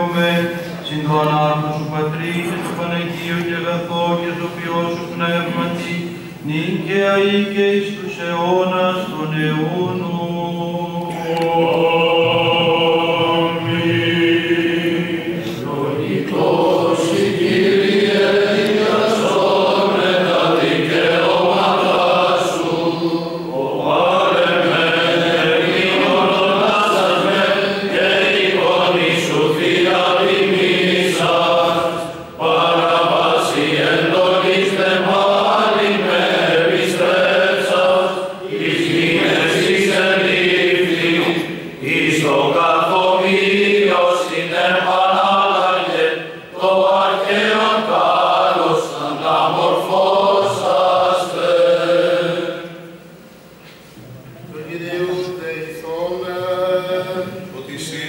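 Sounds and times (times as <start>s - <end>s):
men's voices chanting: 8.4s - 52.8s.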